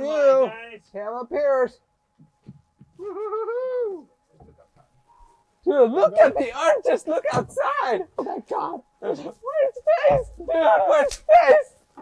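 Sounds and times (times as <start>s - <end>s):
person exclaiming ooh: 3.0s - 4.1s.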